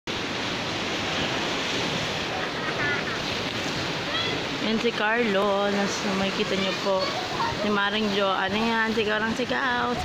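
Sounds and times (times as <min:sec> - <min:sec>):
sea surf on rocky shore: 0:00.1 - 0:10.0
wind rumbling on microphone: 0:00.2 - 0:10.0.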